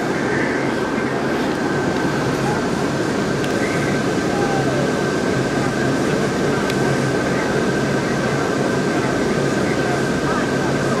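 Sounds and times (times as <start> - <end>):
coach cabin engine drone: 0.0 - 11.0.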